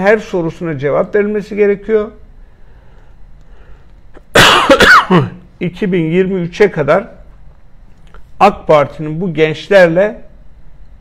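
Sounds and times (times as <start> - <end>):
man coughing: 4.2 - 5.5.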